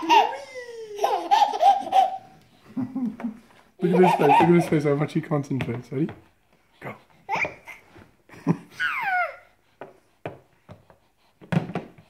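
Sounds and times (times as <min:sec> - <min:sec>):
baby laughing: 0:00.0 - 0:04.8, 0:07.3 - 0:07.9, 0:08.7 - 0:09.5
adult laughing: 0:02.7 - 0:04.7.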